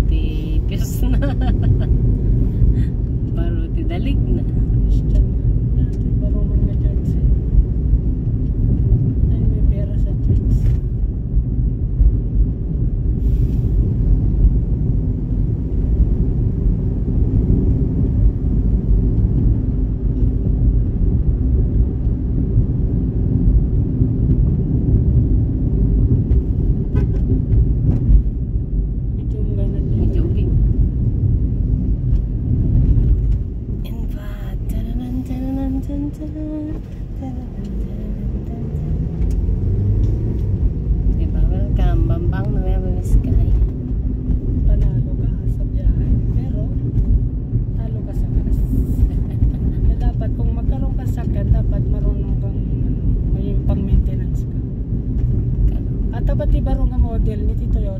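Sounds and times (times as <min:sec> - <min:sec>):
car road noise rumble: 0:00.0 - 0:57.9.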